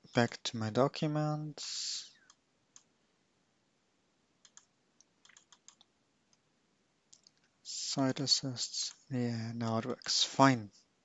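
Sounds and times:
computer mouse clicks: 4.4s - 5.9s.

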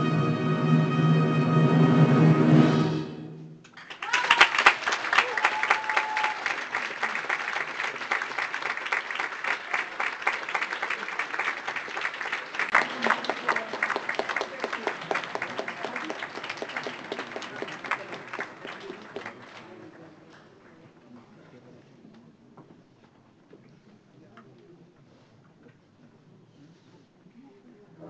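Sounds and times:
audience applauding: 3.7s - 20.6s
held shout: 4.0s - 4.6s, 5.2s - 6.5s.

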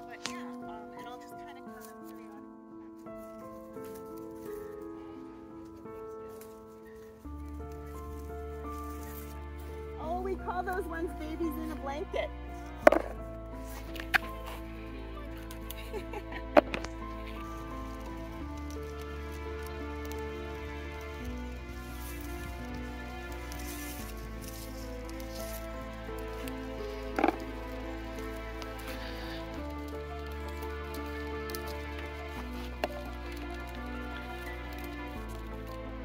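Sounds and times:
soft music of held chords: 0.0s - 36.0s
taps and rustles of berry picking: 0.1s - 0.7s, 12.7s - 36.0s.

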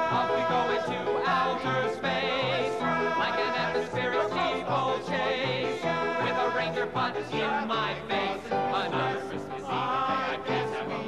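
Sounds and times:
men singing in harmony: 0.0s - 11.0s.

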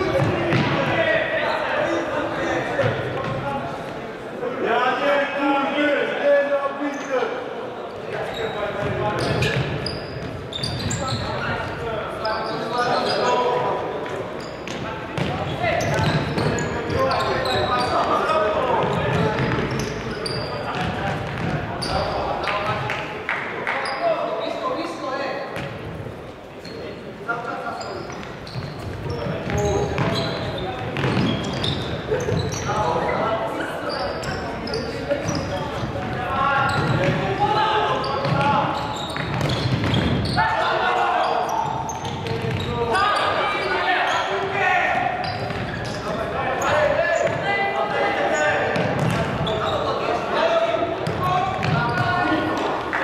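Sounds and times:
players calling out: 27.7s - 53.0s.

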